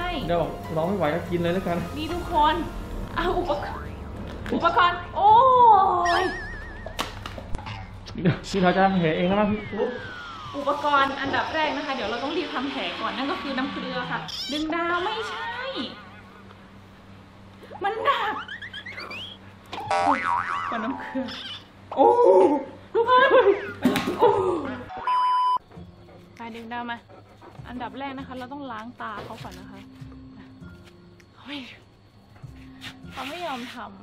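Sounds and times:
cartoon boing: 6.0s - 7.0s, 18.4s - 21.6s
wobbling whistle sound effect: 6.0s - 7.1s, 8.9s - 11.7s
rising whistle-like glide: 8.6s - 14.3s.

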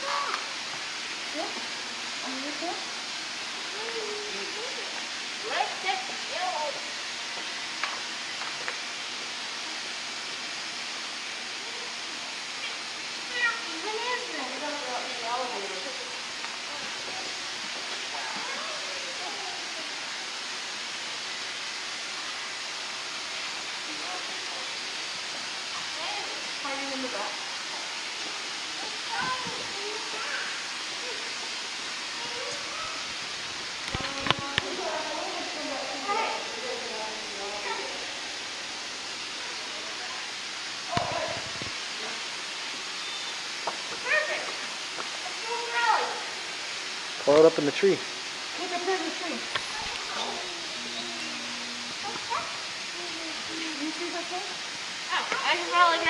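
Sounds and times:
steady background hiss: 0.0s - 56.0s
indistinct voices talking: 48.6s - 56.0s.

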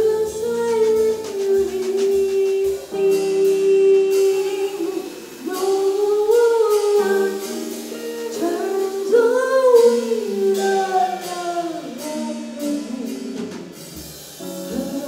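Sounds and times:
woman singing: 0.0s - 13.8s, 14.4s - 15.0s
soft drum kit playing: 0.0s - 15.0s.

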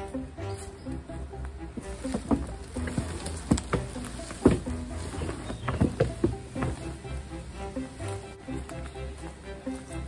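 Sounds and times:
background music with held notes: 0.0s - 10.0s
sticks knocking in plastic bin: 1.8s - 7.0s.

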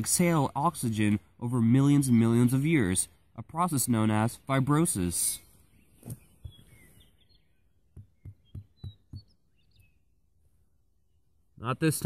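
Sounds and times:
faint bird chirps: 5.3s - 11.6s
hand knocking on sandy ground: 7.9s - 9.4s.

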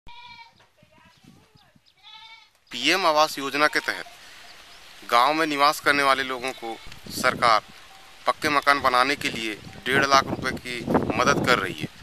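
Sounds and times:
goat bleating: 0.1s - 0.6s, 2.0s - 2.6s, 3.4s - 4.2s, 6.1s - 7.1s.

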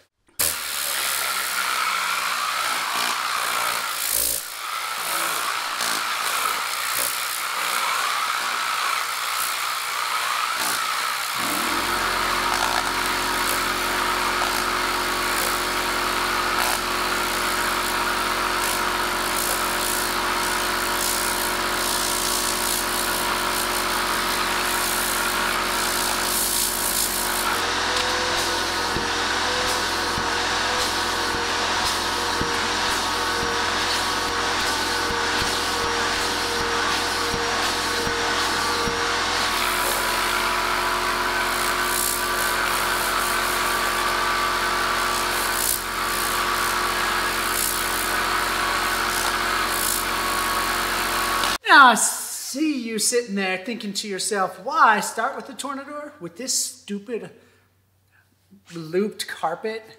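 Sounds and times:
air compressor motor humming: 0.0s - 51.6s.

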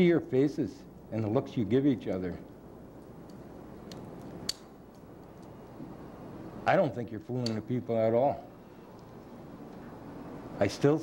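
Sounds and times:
sharp click: 3.3s - 4.7s.

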